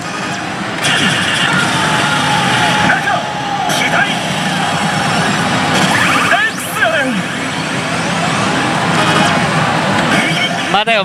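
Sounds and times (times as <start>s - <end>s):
slot machine sound effects and music: 0.0s - 11.0s.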